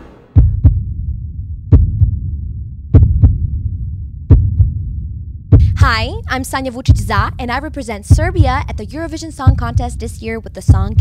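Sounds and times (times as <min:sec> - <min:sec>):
steady low hum: 0:00.0 - 0:11.0
heartbeat-like double thumps: 0:00.2 - 0:11.0.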